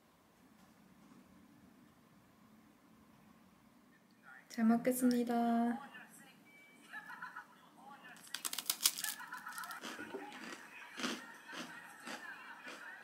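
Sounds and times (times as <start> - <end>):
crunching and chewing biscuit: 8.2 - 13.0.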